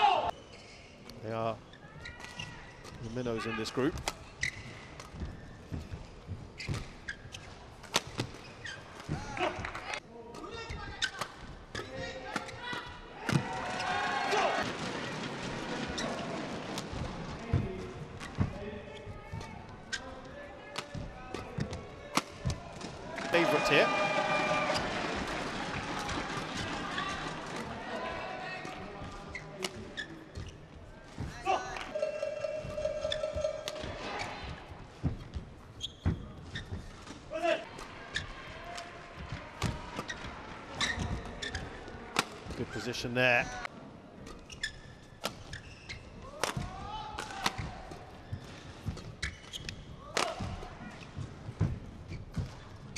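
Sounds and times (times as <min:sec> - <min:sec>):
people shouting and cheering: 0:00.0 - 0:00.3, 0:13.2 - 0:14.7, 0:23.1 - 0:28.6
shoes squeaking on court: 0:00.3 - 0:13.0, 0:15.8 - 0:25.4, 0:28.6 - 0:42.8, 0:44.2 - 0:46.2, 0:47.5 - 0:52.9.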